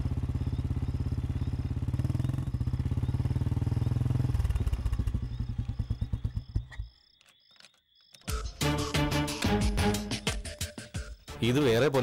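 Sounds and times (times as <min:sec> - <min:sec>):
motorcycle engine running: 0:00.0 - 0:06.9.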